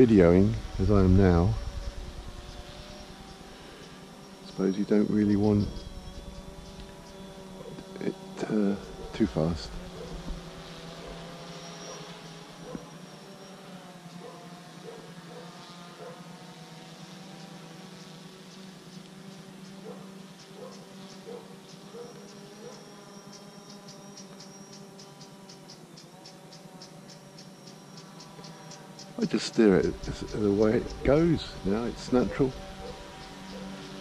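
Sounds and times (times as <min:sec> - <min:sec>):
drone propellers buzzing: 0:00.0 - 0:34.0.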